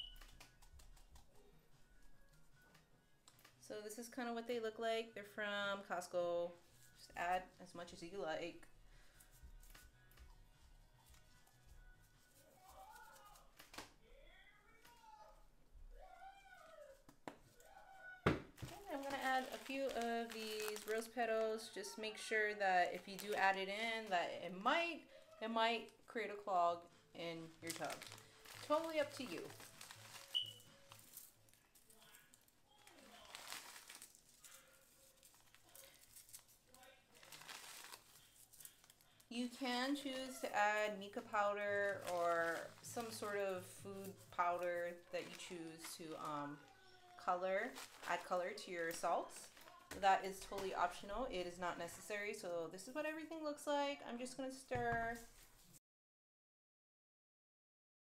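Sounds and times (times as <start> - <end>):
plastic pouch and gloves crinkling: 6.6 - 14.2, 16.0 - 53.3.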